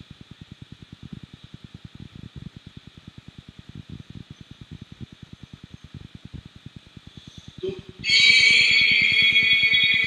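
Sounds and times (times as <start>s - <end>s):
low electrical buzz: 0.0s - 10.0s.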